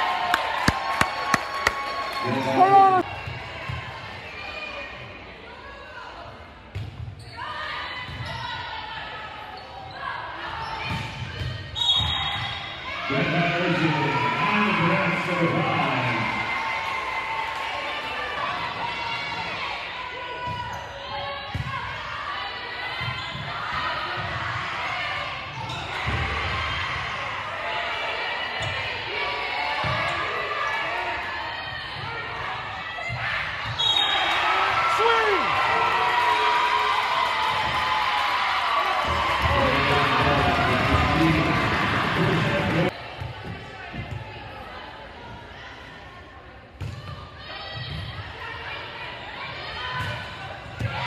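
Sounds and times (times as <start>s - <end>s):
players and spectators cheering: 0.0s - 5.0s, 12.2s - 20.7s, 23.8s - 43.2s
volleyball hit and bouncing: 0.2s - 1.8s
referee's whistle: 11.8s - 12.8s, 33.7s - 34.4s.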